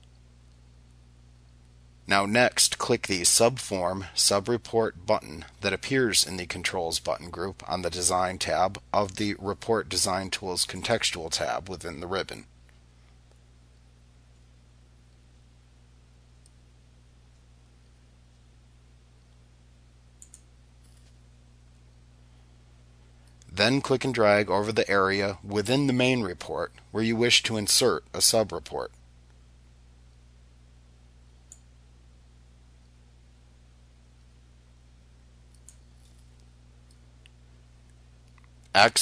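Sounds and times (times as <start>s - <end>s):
faint low hum: 0.0s - 39.0s
computer mouse clicks: 20.2s - 21.1s, 31.5s - 31.7s, 35.5s - 37.4s.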